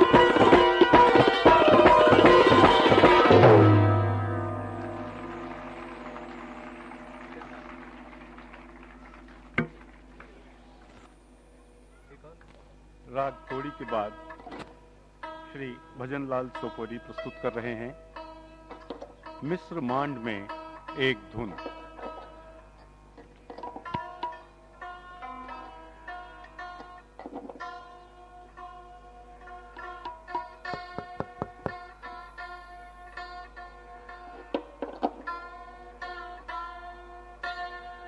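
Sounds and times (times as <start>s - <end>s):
santoor played with hammers: 0.0s - 8.2s, 15.2s - 38.0s
santoor strings ringing: 0.0s - 8.6s, 13.1s - 14.6s.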